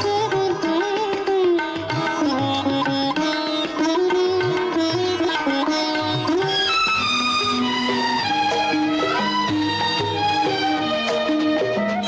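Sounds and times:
plucked string instruments melody: 0.0 - 12.0.

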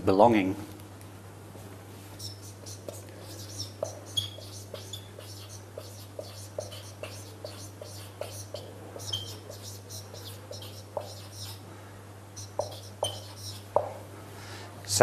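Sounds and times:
steady low hum: 0.6 - 15.0
marker squeaking on whiteboard: 2.2 - 11.6, 12.4 - 14.1.

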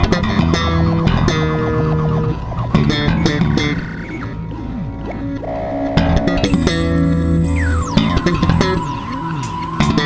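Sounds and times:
electric bass guitar music: 0.0 - 10.0.

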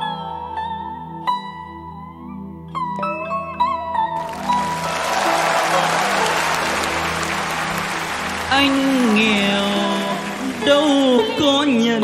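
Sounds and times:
audience applauding: 4.2 - 11.7.

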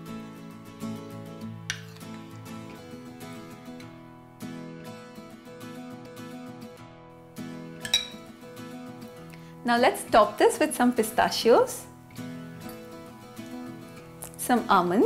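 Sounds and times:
plucked guitar-like music: 0.0 - 11.2, 11.8 - 15.0
metal spoon clinking on bowl: 7.8 - 8.2.

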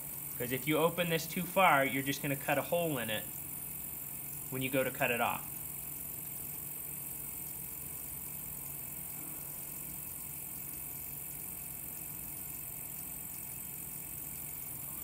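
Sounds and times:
pottery wheel motor hum: 0.0 - 15.0.

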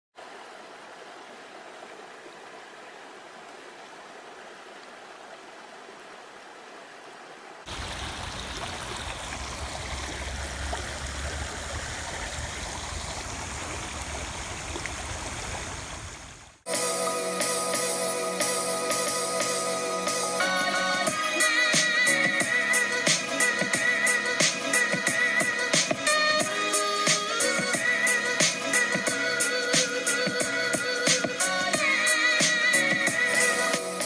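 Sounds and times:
water rushing over rocks: 0.2 - 16.6
churning water: 7.6 - 16.7
music: 16.7 - 34.0.

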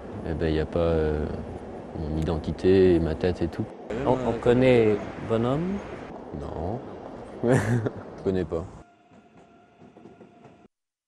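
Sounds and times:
faint city ambience: 0.0 - 10.7
thin steady whine: 0.0 - 10.7.

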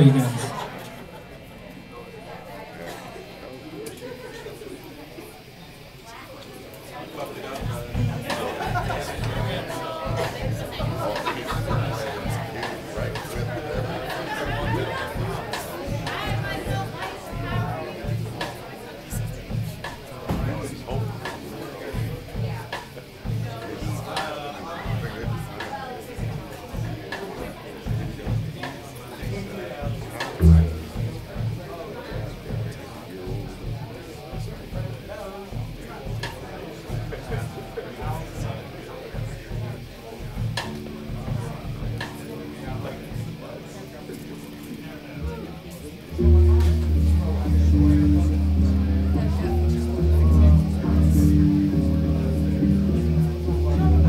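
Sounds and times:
audience chatter: 0.0 - 54.0
live rock band: 7.6 - 54.0
sharp drum hit: 30.4 - 31.2
drum and bass pulse: 30.4 - 31.6, 45.2 - 54.0
rock band playing live: 39.6 - 54.0.

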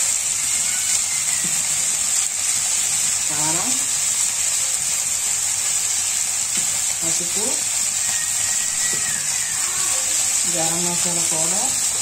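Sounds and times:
onions frying in oil: 0.0 - 12.0.

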